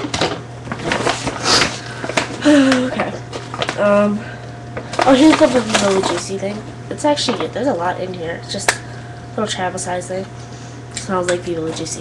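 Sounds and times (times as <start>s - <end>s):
rummaging through a bag: 4.9s - 6.3s.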